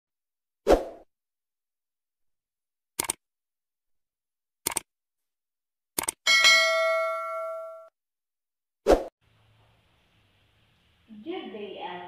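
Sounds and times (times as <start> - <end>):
notification bell ding: 6.3 - 7.9.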